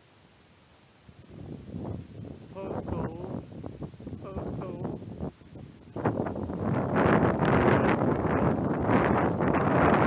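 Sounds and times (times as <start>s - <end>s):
wind buffeting microphone: 1.0s - 10.0s.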